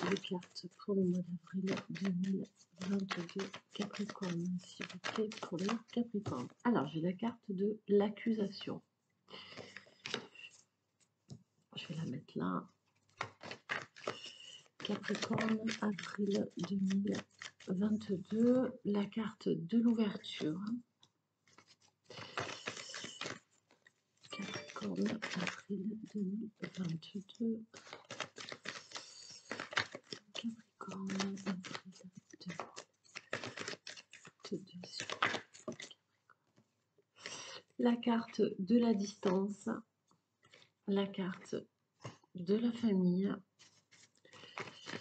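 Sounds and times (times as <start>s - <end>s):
cards rustling while shuffled: 0.0s - 6.7s, 9.3s - 11.2s, 12.7s - 18.5s, 19.8s - 20.7s, 21.4s - 37.7s, 43.5s - 45.0s
cards slapping: 1.7s - 6.6s, 9.4s - 10.4s, 12.9s - 17.7s, 21.4s - 25.7s, 27.7s - 36.0s, 43.6s - 45.0s.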